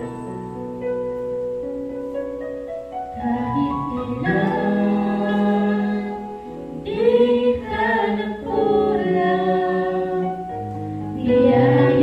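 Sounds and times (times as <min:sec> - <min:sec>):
vocal trio singing in harmony: 0:03.1 - 0:12.0.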